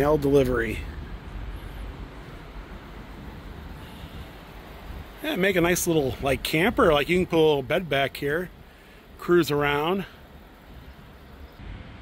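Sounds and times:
outdoor rumble and hiss: 0.0s - 12.0s.

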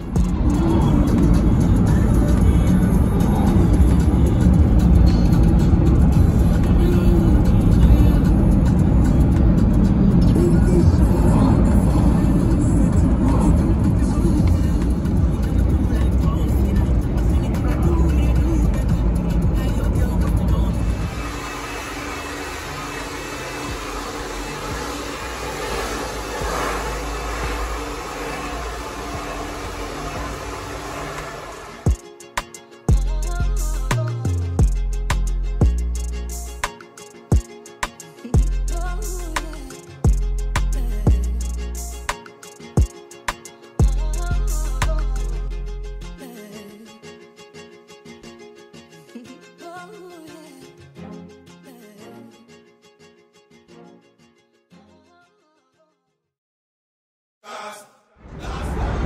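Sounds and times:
background music: 0.0s - 55.6s
hair dryer blowing: 20.8s - 32.0s.

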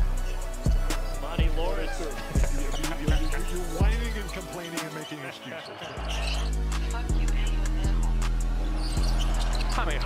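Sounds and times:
hip-hop beat with heavy bass: 0.0s - 5.4s, 6.2s - 10.0s.

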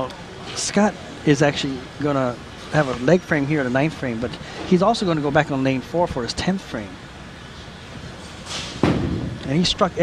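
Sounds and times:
bowling centre room tone: 0.0s - 10.0s
bowling ball thud on lane: 8.8s - 9.4s.

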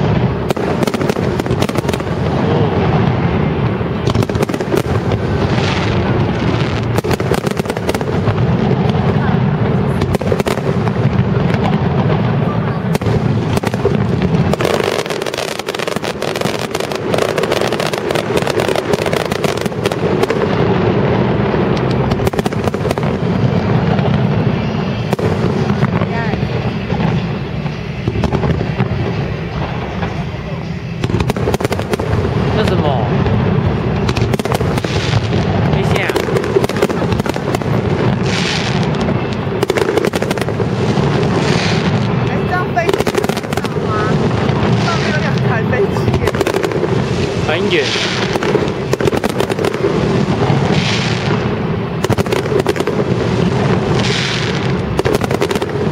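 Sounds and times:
fireworks crackling: 0.0s - 55.9s.

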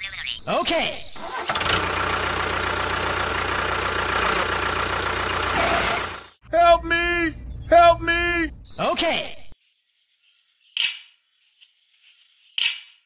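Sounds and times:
engine running: 1.3s - 6.4s.

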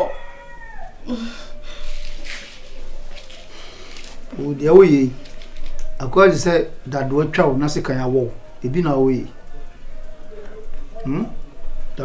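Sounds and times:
faint whimpering: 0.0s - 2.2s.

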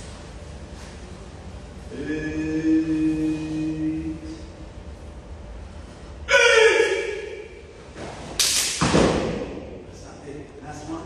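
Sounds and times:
person shouting: 6.3s - 7.6s.

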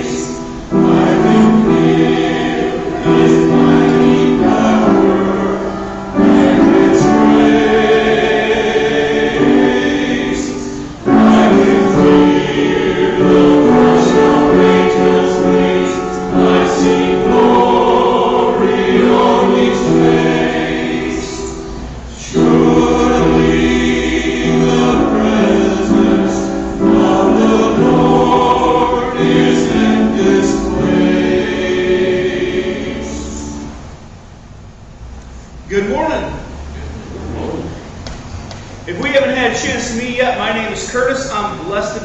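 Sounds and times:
church choir singing: 0.0s - 34.5s.

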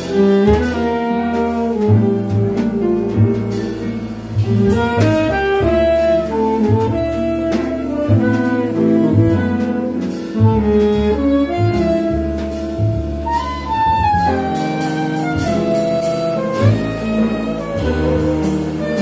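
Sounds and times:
drums: 0.0s - 19.0s
piano: 0.0s - 19.0s
upright bass: 0.0s - 19.0s
saxophones playing melody: 4.4s - 19.0s.

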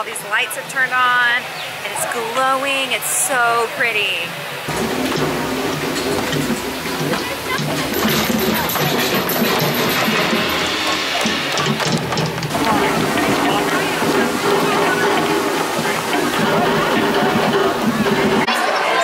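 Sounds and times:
crowd chatter: 0.0s - 19.0s
music: 4.7s - 19.0s.

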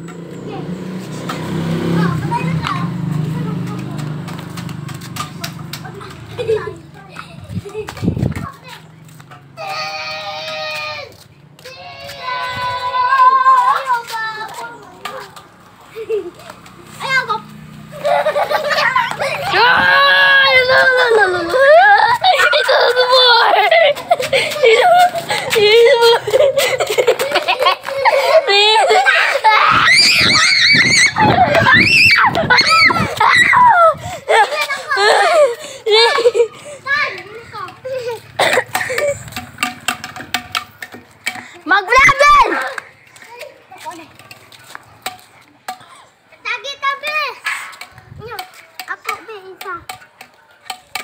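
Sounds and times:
children playing: 0.0s - 51.0s.

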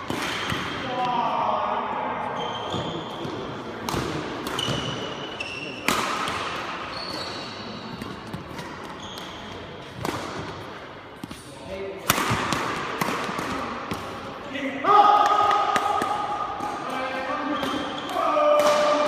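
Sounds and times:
racket hitting shuttlecock: 0.0s - 0.8s, 5.8s - 7.3s, 7.9s - 11.4s, 12.0s - 14.2s
shoes squeaking on court: 2.4s - 3.5s, 4.5s - 5.9s, 6.8s - 10.0s.

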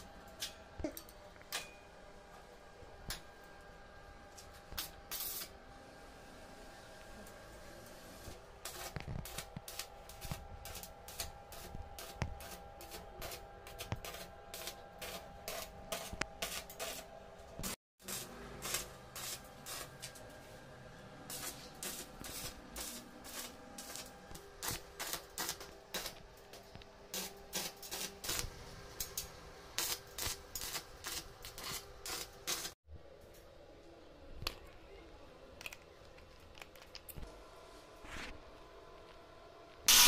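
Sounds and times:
welding arc crackling and popping: 4.4s - 5.5s, 8.6s - 20.2s, 21.3s - 32.8s.

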